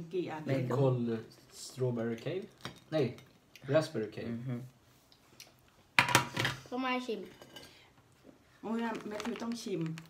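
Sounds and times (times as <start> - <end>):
people talking: 8.6 - 10.0.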